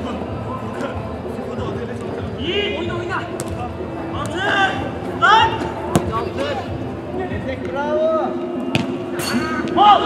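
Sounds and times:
pitch background noise: 0.0 - 10.0
ball being kicked: 3.4 - 3.6, 5.9 - 6.2
players shouting: 4.1 - 6.8.

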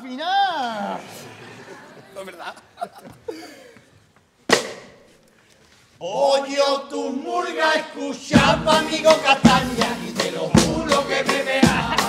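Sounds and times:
sharp slap-like percussive hit: 4.5 - 5.1.

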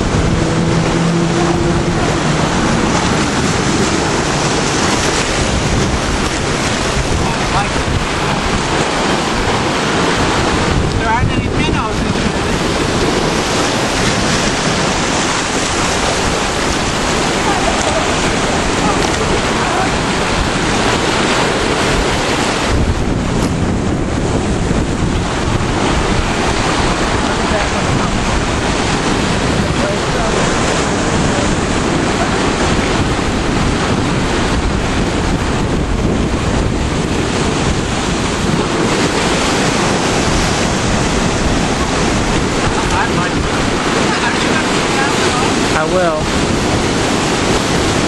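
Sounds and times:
ocean surf breaking over rocks: 0.0 - 48.0
wind on microphone: 0.0 - 48.0.

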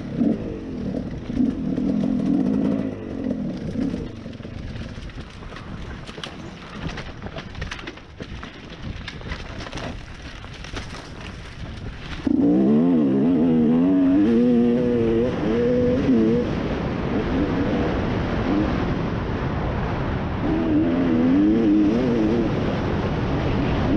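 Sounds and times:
dirt bike engine: 0.0 - 19.4.

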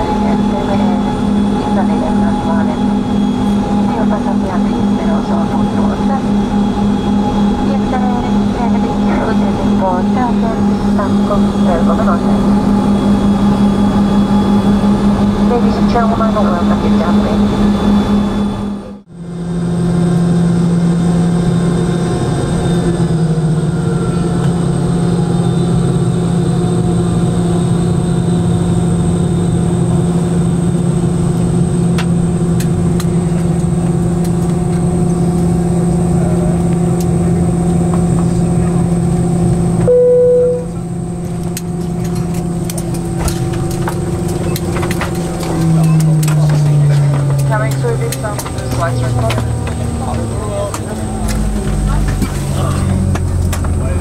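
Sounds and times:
jet engines humming in cabin: 0.0 - 54.0
short chime: 39.9 - 40.8.

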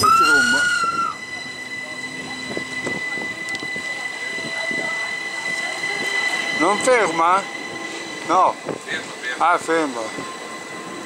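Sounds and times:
rumble of moving train: 0.0 - 11.0
train wheels squealing: 0.0 - 11.0.

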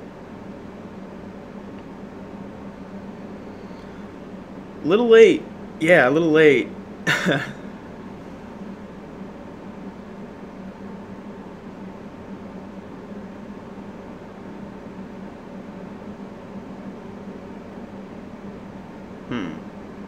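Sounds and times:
low constant hum: 0.0 - 20.0.

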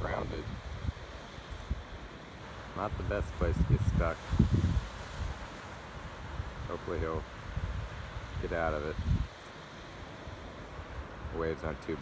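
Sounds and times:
ocean surf breaking: 0.0 - 12.0
wind buffeting microphone: 0.0 - 12.0.

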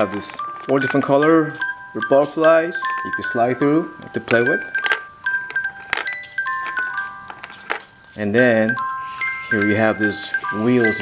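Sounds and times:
music box melody: 0.0 - 11.0.

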